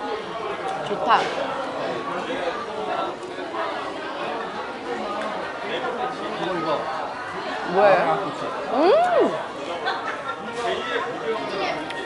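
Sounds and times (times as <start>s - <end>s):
many people talking at once: 0.0s - 12.0s.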